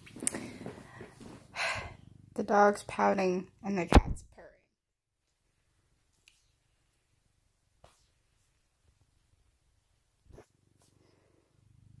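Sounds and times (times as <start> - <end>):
cat purring: 0.6 - 3.0, 9.9 - 12.0.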